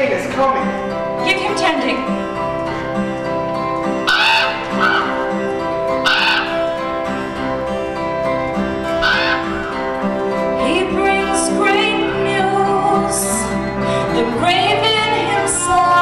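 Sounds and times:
guitar: 0.0 - 16.0
live band held chords: 0.7 - 16.0.

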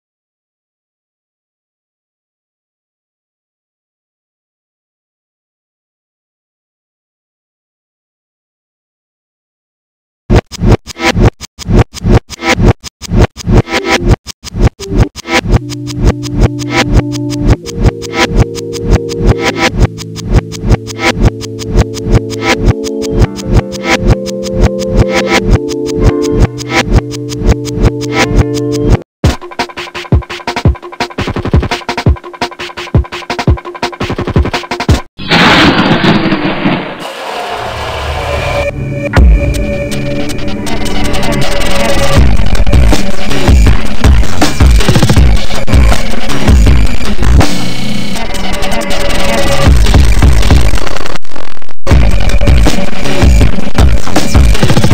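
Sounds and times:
electronic music with choppy beat: 10.3 - 35.1, 39.1 - 54.9.

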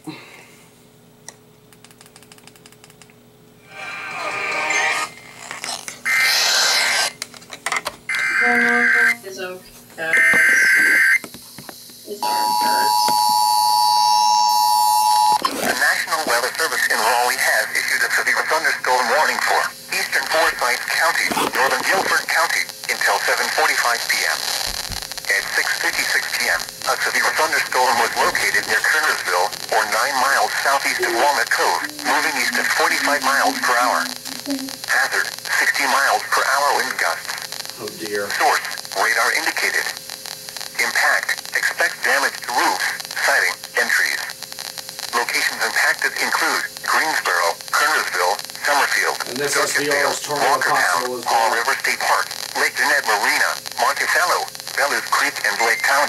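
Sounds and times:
two-tone attention signal: 8.1 - 9.2, 10.0 - 11.2, 12.2 - 15.4
data-header tones: 8.1 - 9.3, 10.0 - 11.2, 12.0 - 15.5, 26.9 - 34.9
person reading over radio: 8.2 - 11.0, 12.1 - 13.4, 15.4 - 56.0.

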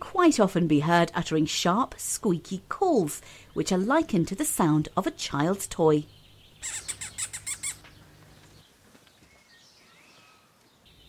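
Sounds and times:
vole squeaking: 6.6 - 8.0.

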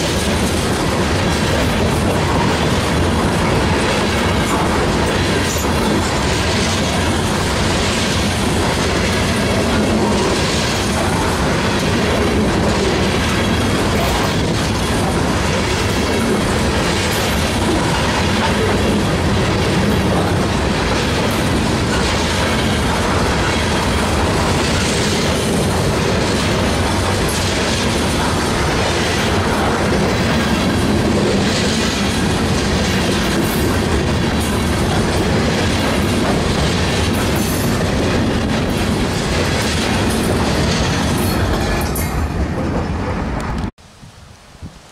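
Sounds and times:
wheels clacking over rail joints: 0.0 - 43.7
train wheels rumbling on rails: 0.0 - 43.8.

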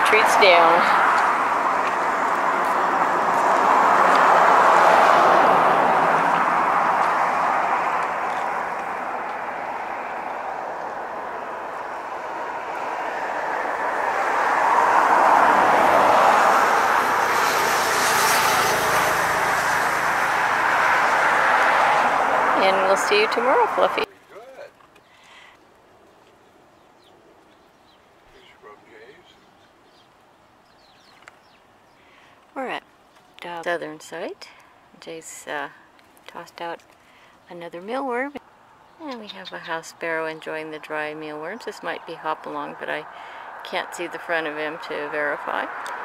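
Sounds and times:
passing road traffic: 0.0 - 46.0.

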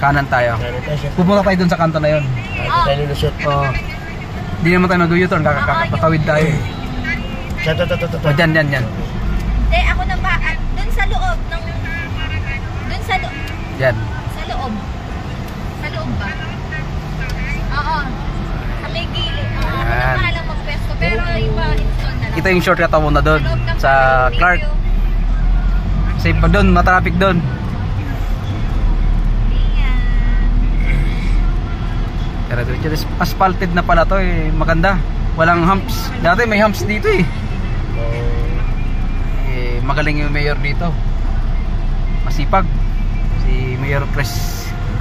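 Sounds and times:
engine and road rumble: 0.0 - 45.0
person speaking: 37.9 - 38.7.

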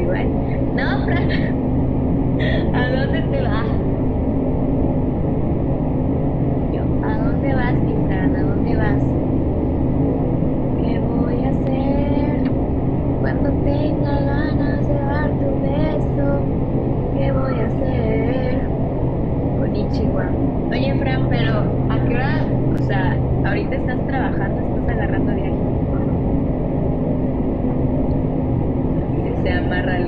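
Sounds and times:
woman talking softly: 0.0 - 1.5, 2.4 - 3.9, 6.7 - 9.0, 10.8 - 12.5, 17.2 - 18.7, 19.6 - 26.1, 29.1 - 30.0
low droning hum: 0.0 - 30.0.

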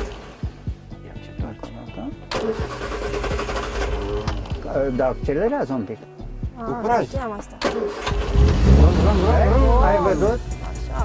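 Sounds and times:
car engine starting and rumbling: 0.0 - 0.6, 2.3 - 5.2, 7.6 - 11.0.

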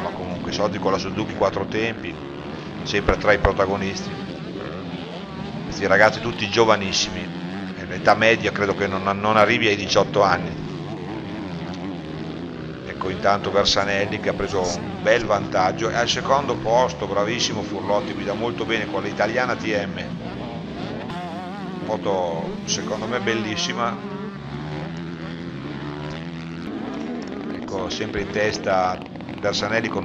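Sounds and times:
motorbike engines droning: 0.0 - 30.0.

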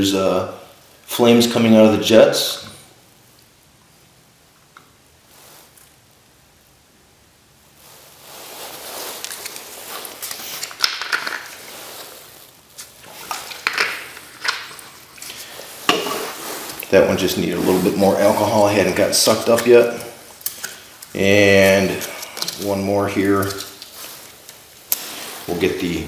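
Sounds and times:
rustling and crunching handling: 7.8 - 26.0.

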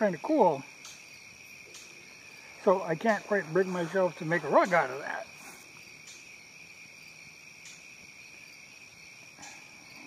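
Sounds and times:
crickets chirping: 0.0 - 10.0
faint rustle: 1.7 - 6.2.

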